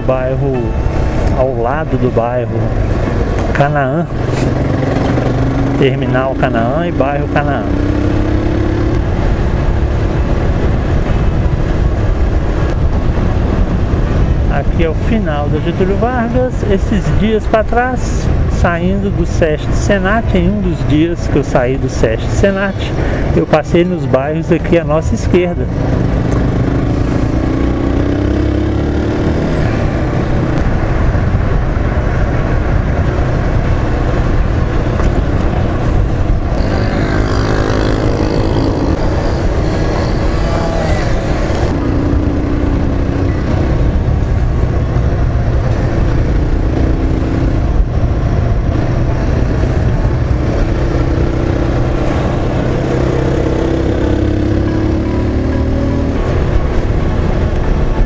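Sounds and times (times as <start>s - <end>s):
wind and road noise: 0.0s - 58.0s
motorcycle engine accelerating: 2.5s - 14.4s, 25.5s - 58.0s.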